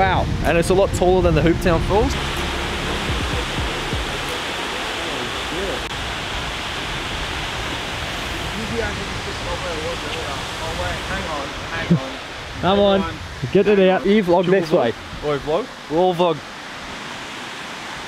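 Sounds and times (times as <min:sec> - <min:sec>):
waterfall rushing: 0:00.0 - 0:18.0.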